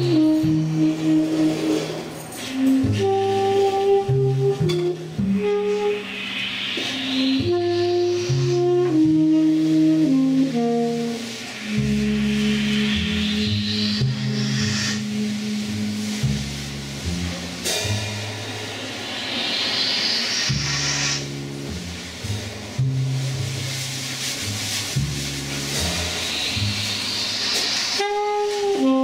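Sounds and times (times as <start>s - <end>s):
tenor saxophone: 0.0s - 6.2s, 6.8s - 16.9s, 27.8s - 29.0s
trumpet: 0.0s - 19.1s, 20.4s - 29.0s
double bass notes: 0.0s - 19.6s, 20.3s - 29.0s
cymbal washes: 0.0s - 29.0s.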